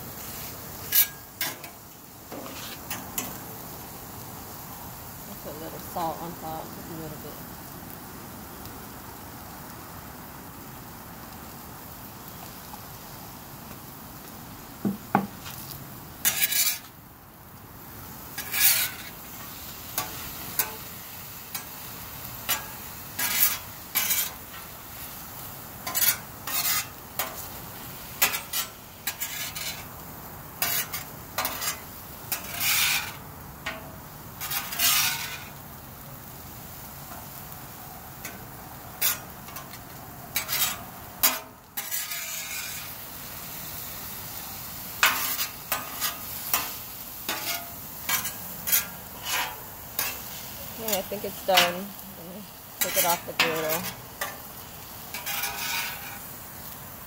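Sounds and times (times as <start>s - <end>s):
food sizzling on a griddle: 0.0s - 57.0s
metal spatula scraping: 0.3s - 3.3s, 16.2s - 16.9s, 18.4s - 20.9s, 22.5s - 24.7s, 25.8s - 27.5s, 28.2s - 29.9s, 30.6s - 33.8s, 34.4s - 35.5s, 39.0s - 39.8s, 40.4s - 42.9s, 45.0s - 52.0s, 52.8s - 56.3s.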